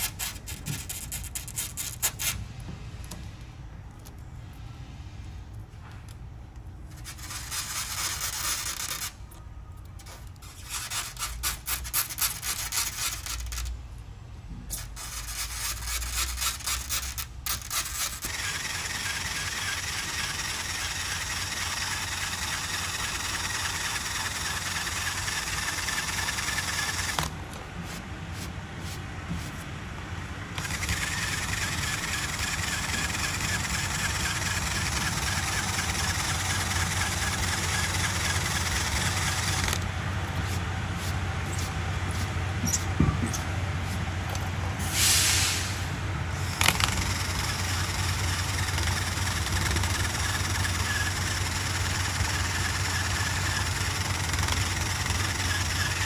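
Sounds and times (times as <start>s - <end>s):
power tool eraser wheel rubbing: 6.9s - 9.2s, 10.0s - 13.7s, 14.7s - 29.6s, 30.6s - 39.8s, 46.4s - 56.0s
short hiss: 44.8s - 45.9s.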